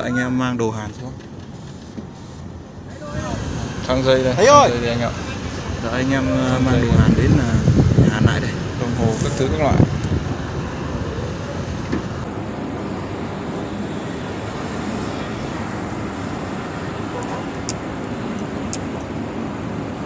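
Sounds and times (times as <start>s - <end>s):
strong wind over microphone: 2.9s - 14.8s.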